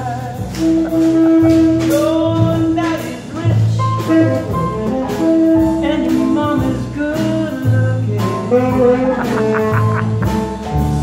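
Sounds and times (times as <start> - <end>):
man singing: 0.0 - 10.7
jazz band playing: 0.0 - 11.0.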